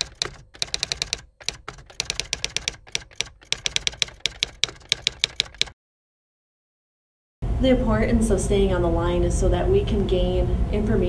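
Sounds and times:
computer keyboard typing: 0.0 - 5.8.

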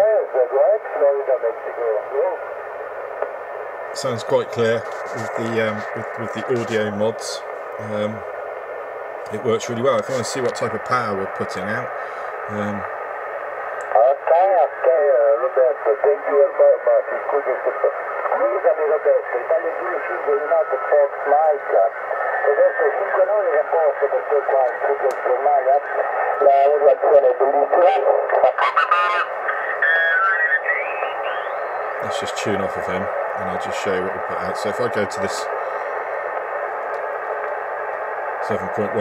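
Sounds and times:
narrow-band radio speech: 0.0 - 2.5, 4.0 - 8.3, 9.3 - 12.9, 13.8 - 35.7, 38.4 - 39.0
radio hiss: 0.0 - 39.0.

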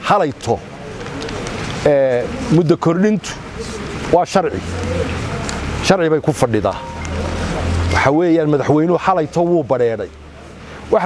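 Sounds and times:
man speaking: 0.0 - 0.6, 1.8 - 3.5, 4.1 - 4.9, 5.8 - 10.1.

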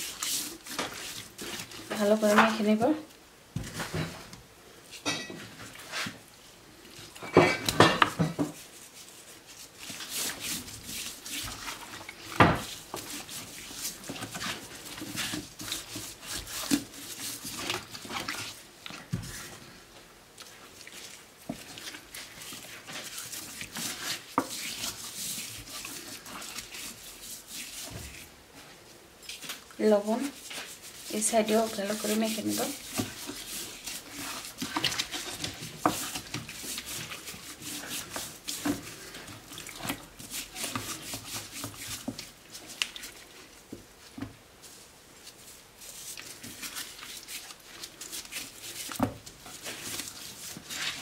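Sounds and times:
hands rubbing and patting raw duck: 6.9 - 19.8, 20.4 - 51.0.

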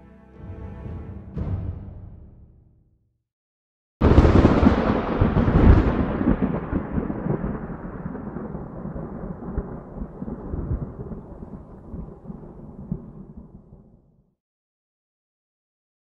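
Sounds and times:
thunder cracks: 4.0 - 13.8
rolling thunder rumble: 4.0 - 14.0.

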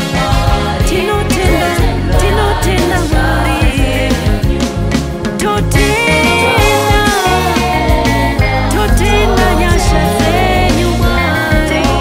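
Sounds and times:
woman singing lead: 0.0 - 4.6, 5.3 - 12.0
backing vocalists: 0.0 - 12.0
band with bass and drums: 0.0 - 12.0.

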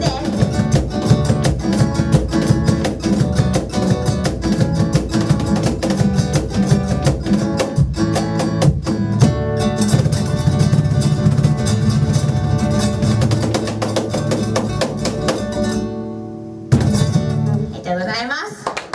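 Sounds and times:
strummed acoustic guitar: 0.0 - 17.8
cajon strokes: 0.0 - 17.9.

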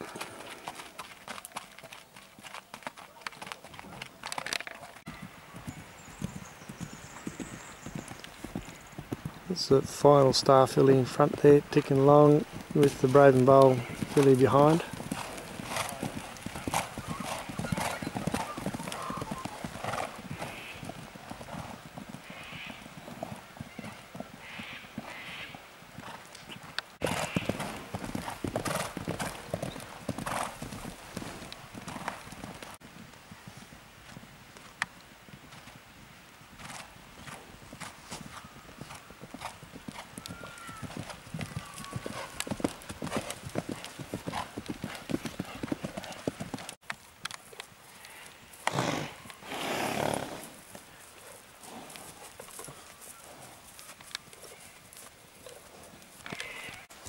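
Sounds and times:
horse hoofbeats on dirt: 0.0 - 57.0.

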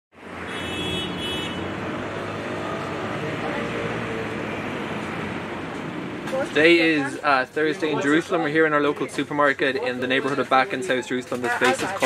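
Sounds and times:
road traffic: 0.1 - 12.0.

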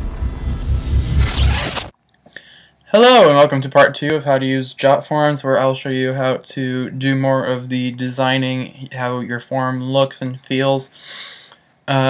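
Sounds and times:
glitchy electronic sting with bass: 0.0 - 1.9.

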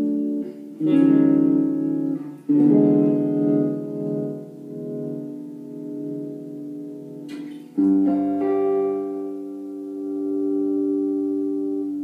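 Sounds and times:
electric guitar chord ringing: 0.0 - 12.0.

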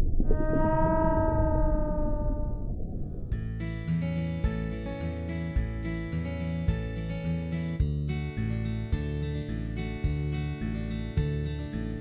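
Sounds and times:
low underwater rumble: 0.0 - 3.8
long whale call: 0.2 - 3.0.

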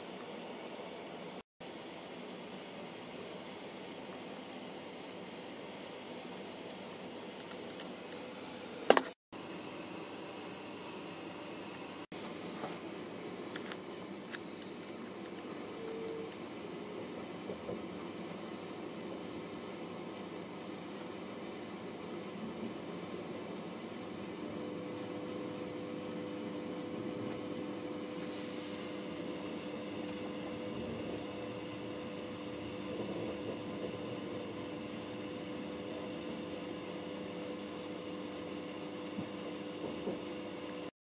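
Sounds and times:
train carriage rumble and hiss: 10.8 - 37.4, 39.1 - 40.3
brief hiss: 28.2 - 29.0.

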